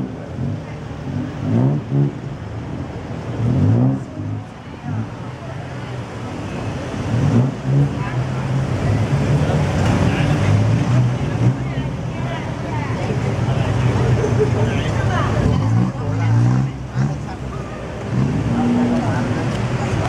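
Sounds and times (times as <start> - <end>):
car engines running: 0.0 - 20.0
passers-by talking: 0.0 - 20.0.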